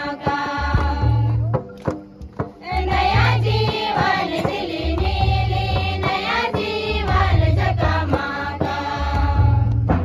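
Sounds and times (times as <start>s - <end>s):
women singing together: 0.0s - 1.6s, 2.6s - 9.9s
instrumental accompaniment with bass: 0.0s - 10.0s.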